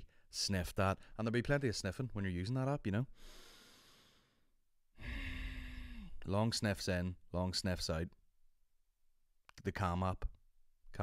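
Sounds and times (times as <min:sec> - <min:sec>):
man breathing into microphone: 0:03.2 - 0:06.2.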